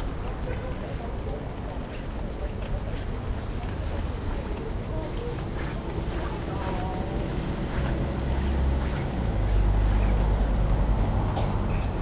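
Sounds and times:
city street noise: 0.0s - 12.0s
low rumble of passing traffic: 0.0s - 12.0s.

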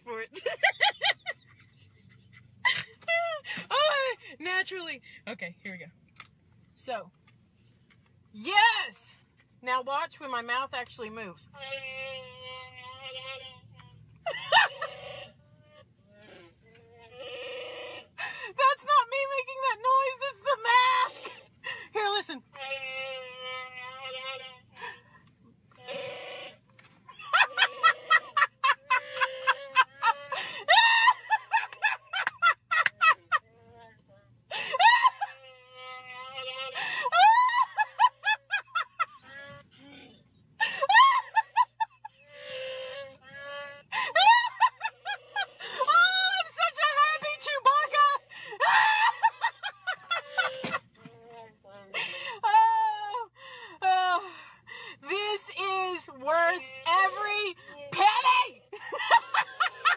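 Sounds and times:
woman laughing high-pitched: 0.4s - 4.1s, 27.1s - 33.5s, 34.5s - 35.6s, 36.4s - 39.6s, 40.6s - 42.7s, 43.9s - 50.9s, 51.9s - 54.2s, 56.2s - 59.9s
electronic growl: 25.8s - 26.7s.

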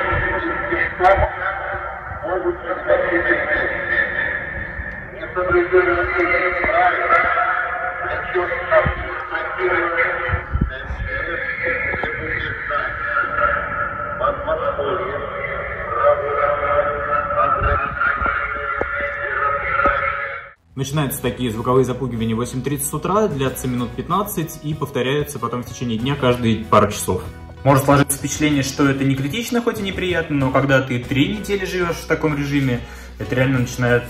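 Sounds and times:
voice over loudspeaker: 0.0s - 34.0s.

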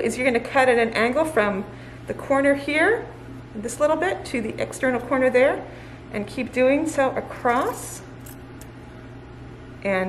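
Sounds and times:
woman speaking: 0.0s - 8.1s
steady low hum: 0.0s - 10.0s.

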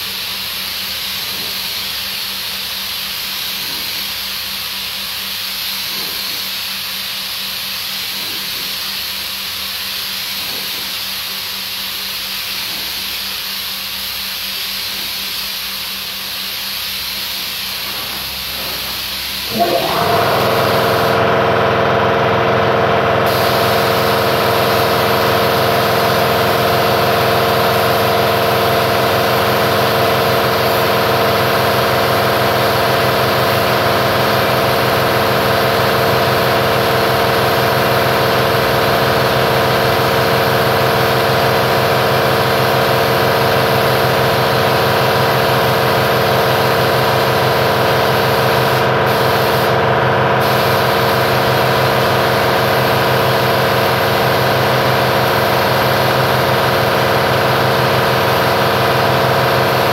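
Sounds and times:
air hissing: 0.0s - 21.2s, 23.2s - 49.8s, 50.4s - 59.9s.

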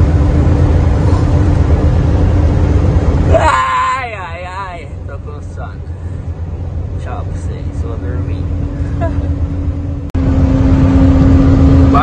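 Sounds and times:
vehicle engine and road drone: 0.0s - 12.0s.

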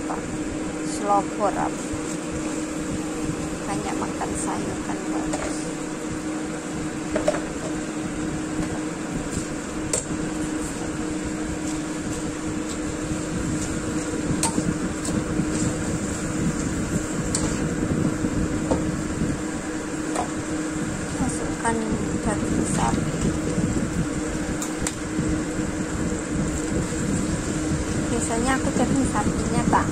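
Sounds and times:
steady hum: 0.0s - 29.9s.

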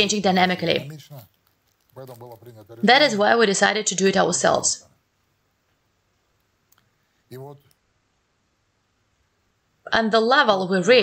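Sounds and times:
man speaking: 0.6s - 3.0s, 7.3s - 7.7s.

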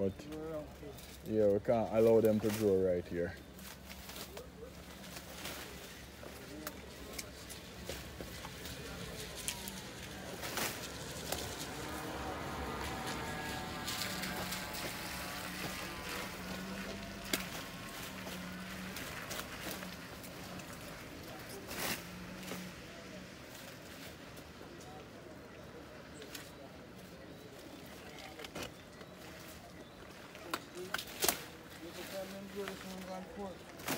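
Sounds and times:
plant stalks rustling and snapping: 0.3s - 25.2s, 26.1s - 33.9s
car passing on wet road: 8.5s - 23.4s.

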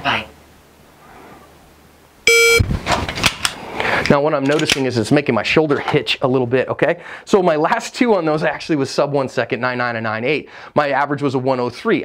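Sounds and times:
electronic start beep: 2.3s - 2.6s.

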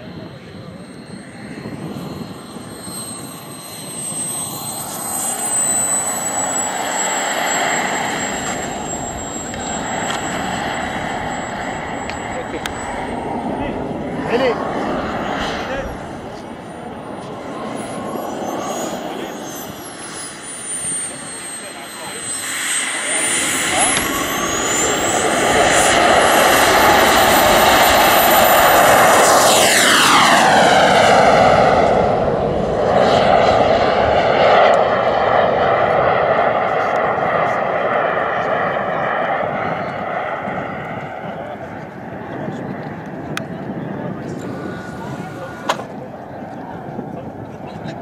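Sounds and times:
model jet turbine whining: 0.0s - 48.0s.

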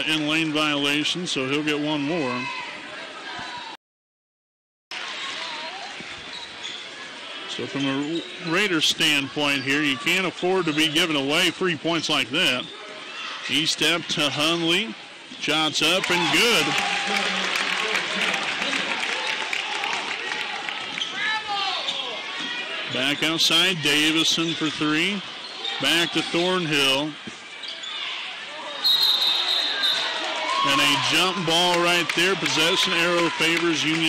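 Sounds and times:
crowd chatter: 1.6s - 3.8s, 5.0s - 34.0s
crowd murmur: 16.3s - 20.9s.

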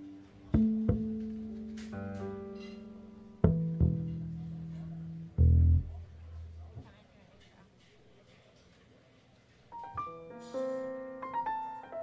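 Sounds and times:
double bass plucked pizzicato: 0.4s - 1.7s, 3.4s - 6.7s.

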